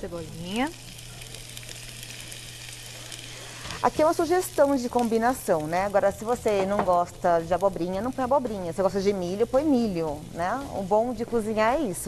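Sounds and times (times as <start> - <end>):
onion sizzling in oil: 0.0 - 12.0.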